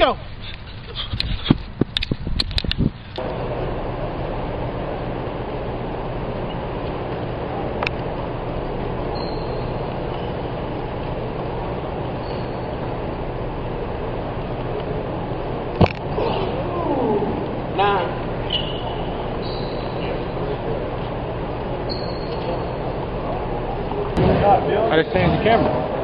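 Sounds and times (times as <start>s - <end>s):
gymnasium hum and rushing: 0.0s - 26.0s.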